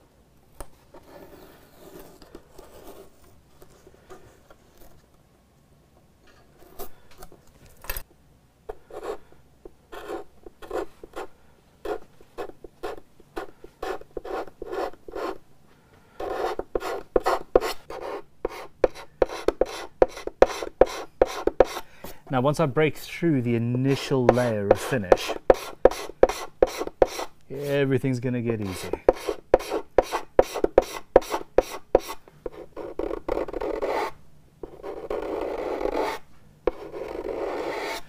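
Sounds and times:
chisel scraping wood finish: 23.7 - 27.8, 28.6 - 34.1.

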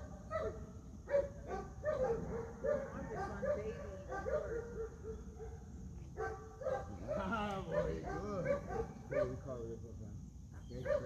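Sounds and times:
dog barking and whining: 0.3 - 5.5.

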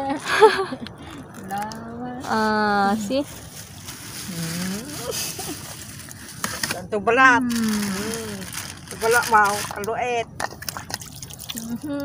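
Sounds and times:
steady background noise: 0.0 - 12.0
quiet vocal sounds: 4.3 - 5.2.

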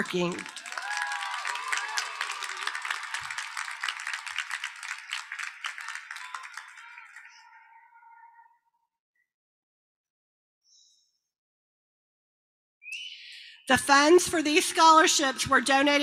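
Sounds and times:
audience applauding: 0.0 - 8.0
audience cheering: 0.0 - 8.1.

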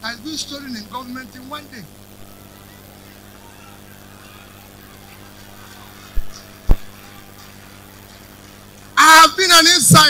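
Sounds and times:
steady low hum: 0.0 - 10.0
faint indistinct voices: 2.0 - 9.0.

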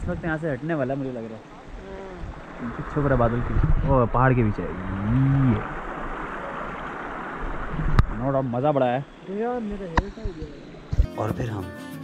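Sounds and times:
stream water rushing: 0.0 - 11.6
man's voice: 11.0 - 12.0.

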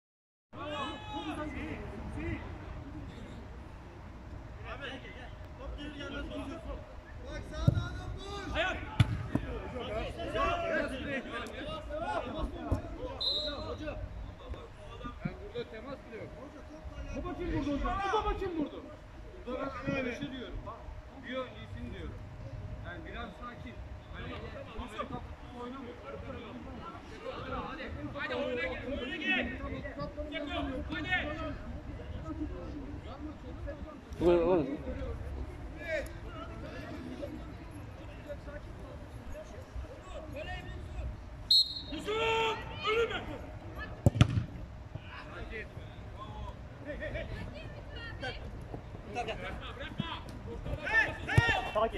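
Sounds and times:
football kicked thump: 7.6 - 7.8, 9.0 - 9.5, 44.0 - 44.6
referee's whistle: 13.2 - 13.8, 41.5 - 42.2
players shouting: 41.6 - 45.5, 49.1 - 51.9.

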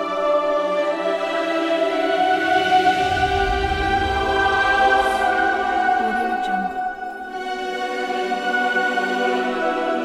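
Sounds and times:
choir holding a chord: 0.0 - 10.0
low rumble: 2.3 - 7.2.

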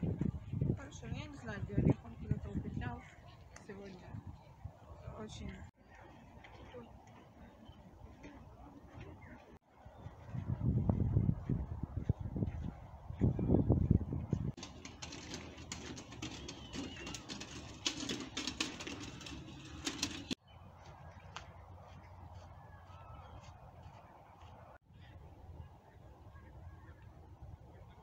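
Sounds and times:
birds chirping and calling: 15.0 - 20.3.

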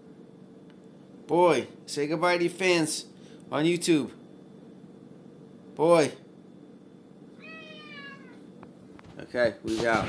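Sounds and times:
cat meowing: 7.4 - 8.4.

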